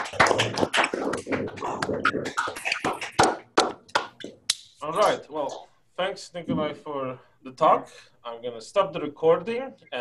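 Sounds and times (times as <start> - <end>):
people applauding: 0.0 - 4.2
man speaking: 4.8 - 10.0.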